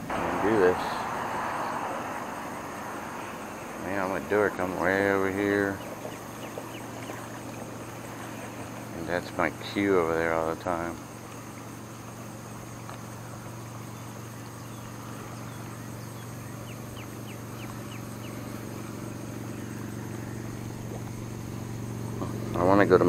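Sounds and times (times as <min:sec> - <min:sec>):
motor humming: 0:02.6 - 0:23.0
bird chirping: 0:03.3 - 0:07.8, 0:13.8 - 0:22.6.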